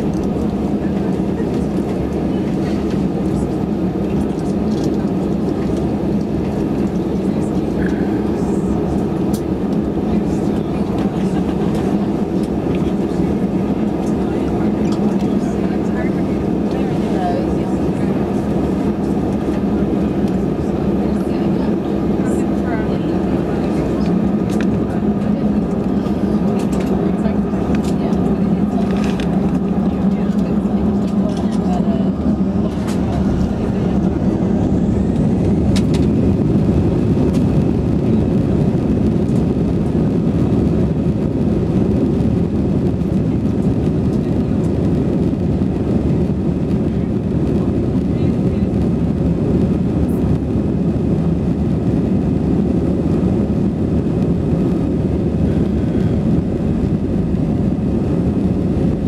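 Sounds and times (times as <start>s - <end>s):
jet engines rumbling in cabin: 0.0s - 59.0s.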